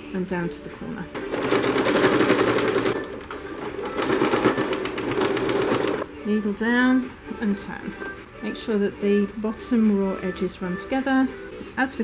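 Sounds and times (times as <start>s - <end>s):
sewing machine stitching: 1.1s - 6.1s.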